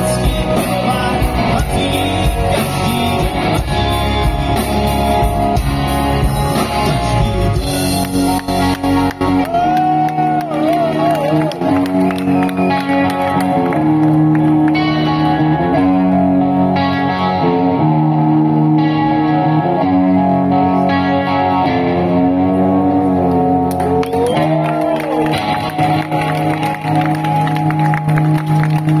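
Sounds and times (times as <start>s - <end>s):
electric guitar chords: 0.0s - 29.0s
live rock band: 0.0s - 29.0s.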